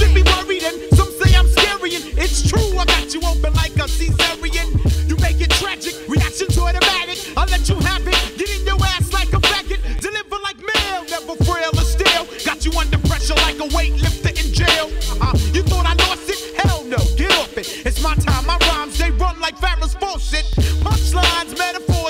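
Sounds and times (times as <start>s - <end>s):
heavy pulsing bass line: 0.0s - 10.1s, 11.1s - 22.0s
rapping over a beat: 0.0s - 22.0s.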